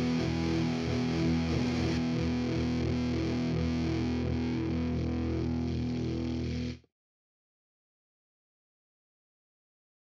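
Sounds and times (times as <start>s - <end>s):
distorted electric guitar music: 0.0s - 6.8s.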